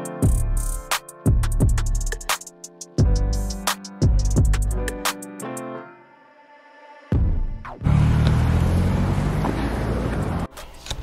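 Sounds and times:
street traffic rumble: 7.8 - 11.0.

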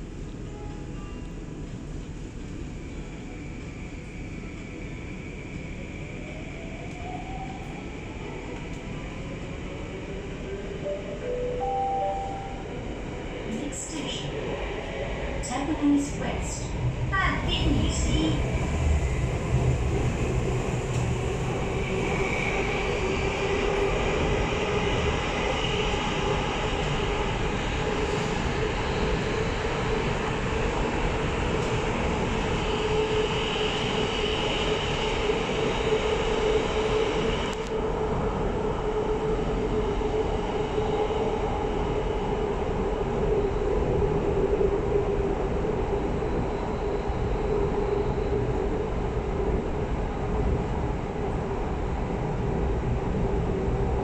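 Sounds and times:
metro train running in tunnel: 0.0 - 54.0
high-pitched tone: 10.9 - 12.7.

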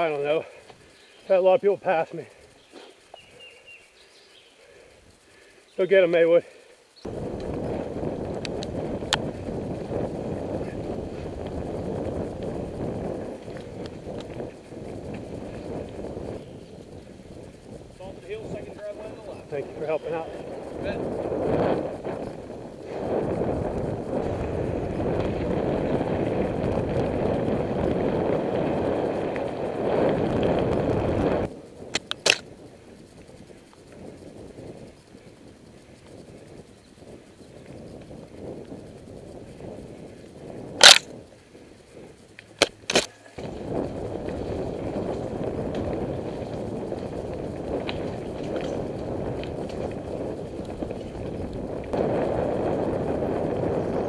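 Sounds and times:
rumble of bike tyres and air: 0.0 - 54.0
sharp clicks: 31.9 - 32.6, 40.8 - 41.2, 42.3 - 43.2.

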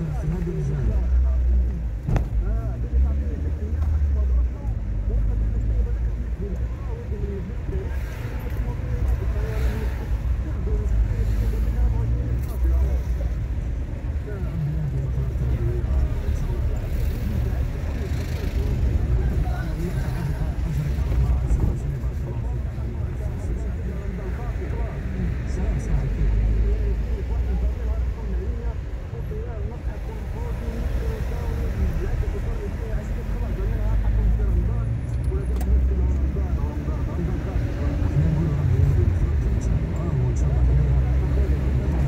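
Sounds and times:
car engine and tyre rumble: 0.0 - 42.0.

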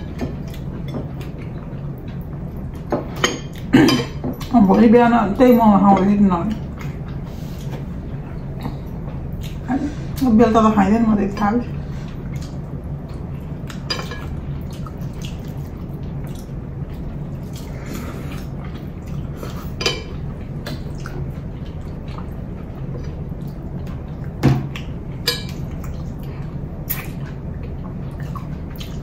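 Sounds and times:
steady low hum: 0.0 - 29.0.

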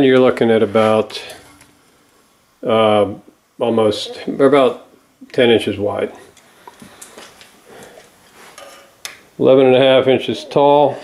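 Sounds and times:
soft rustles: 6.1 - 9.0.

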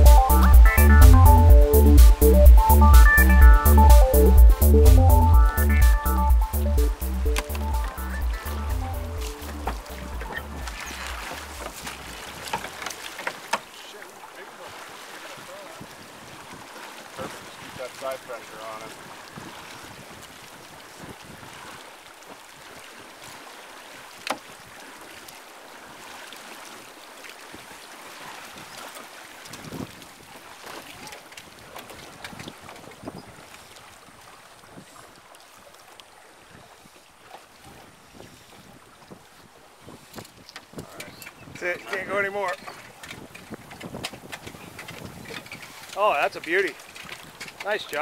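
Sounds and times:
water splashing and lapping: 0.0 - 48.0
oar strokes: 6.8 - 48.0
knocks on boat: 7.3 - 13.7, 24.2 - 24.5
wind on microphone: 18.9 - 21.8, 29.5 - 35.2, 37.6 - 45.9.

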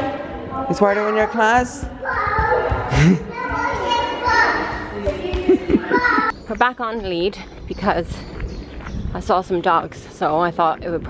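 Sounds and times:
children calling and squealing: 2.0 - 6.4.

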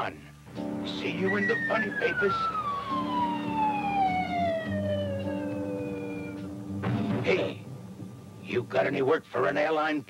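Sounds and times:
held low music chord: 0.5 - 6.9
whistle sliding down in pitch: 1.2 - 6.5.

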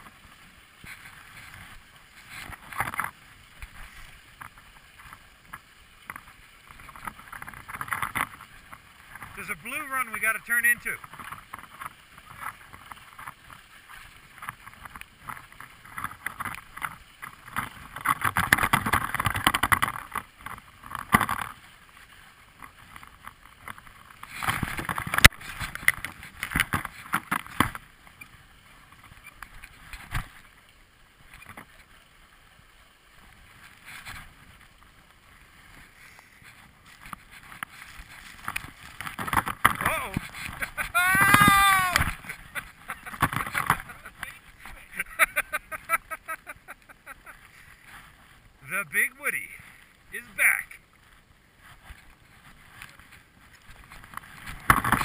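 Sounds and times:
skis scraping on snow: 0.0 - 55.0.

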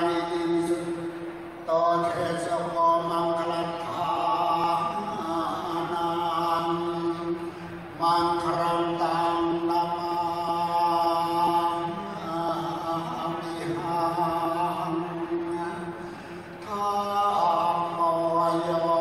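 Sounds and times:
man chanting a prayer: 0.0 - 19.0.

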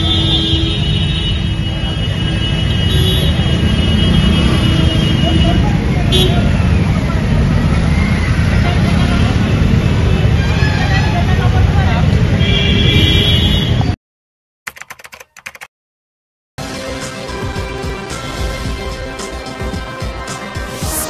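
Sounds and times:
traffic rumble: 0.0 - 14.0
people's voices: 5.0 - 9.6, 10.5 - 12.4.

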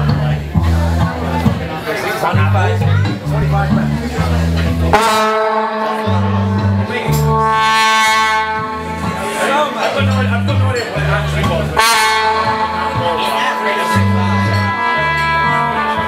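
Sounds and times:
repeating bass line: 0.0 - 16.0
rock band playing: 0.0 - 16.0
brass horns holding notes: 4.9 - 16.0.

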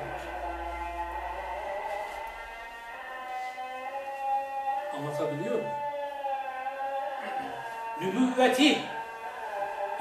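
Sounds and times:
steady humming tones: 0.0 - 10.0.

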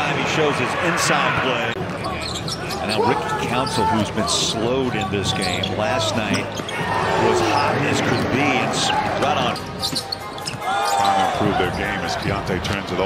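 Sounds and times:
crowd noise and voices: 0.0 - 13.0.

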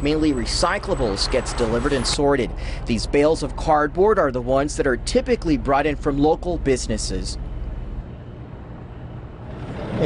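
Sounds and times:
outdoor rumble and hiss: 0.0 - 10.0.

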